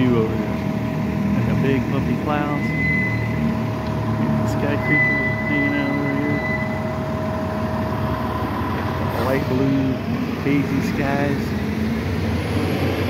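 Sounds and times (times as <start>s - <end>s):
steady mechanical hum: 0.0s - 13.0s
traffic: 0.0s - 13.0s.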